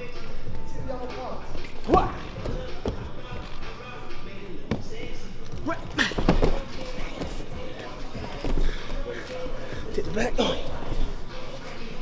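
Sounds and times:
background chatter in large hall: 0:00.0 - 0:12.0
bodies thudding on padded mat: 0:06.2 - 0:07.4.

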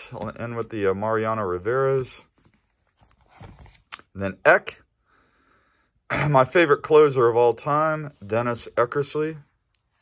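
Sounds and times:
plastic pages rustling: 0:00.0 - 0:04.1.

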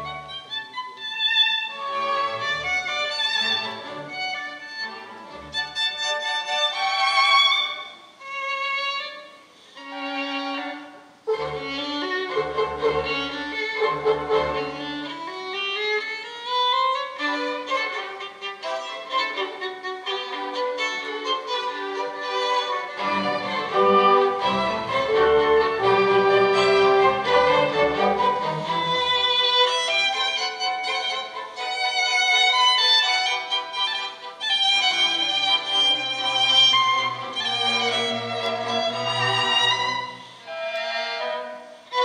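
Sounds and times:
solo violin: 0:00.0 - 0:42.0
symphony orchestra: 0:00.0 - 0:42.0.

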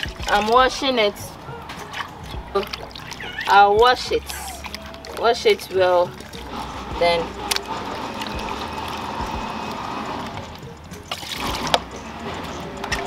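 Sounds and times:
water sloshing and dripping: 0:00.0 - 0:13.0.

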